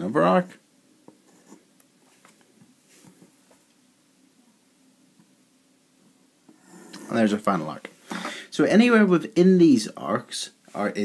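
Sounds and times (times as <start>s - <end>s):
pencil compass scratching paper: 1.2s - 1.7s.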